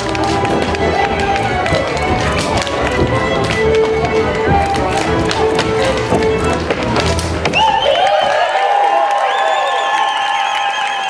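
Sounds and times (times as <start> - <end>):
hands slapping boots: 0.0 - 8.0
cimbalom band playing dance music: 0.0 - 8.2.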